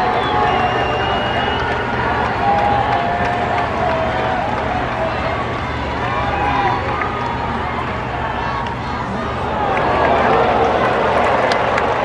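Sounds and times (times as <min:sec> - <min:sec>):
crowd voices calling out and talking: 0:00.0 - 0:12.0.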